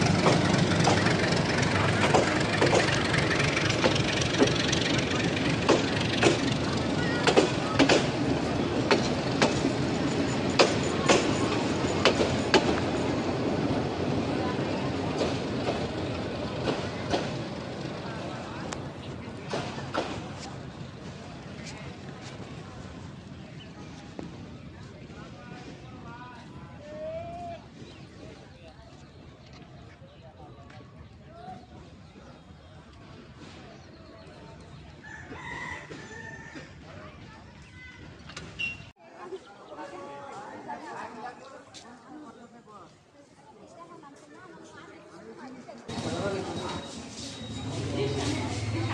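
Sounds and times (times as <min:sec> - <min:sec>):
wheels clacking over rail joint: 0:00.0 - 0:21.2
train wheels rumbling on rail: 0:00.0 - 0:38.9, 0:45.8 - 0:48.9
outdoor background noise: 0:00.0 - 0:48.9
rooster crowing: 0:35.0 - 0:36.8.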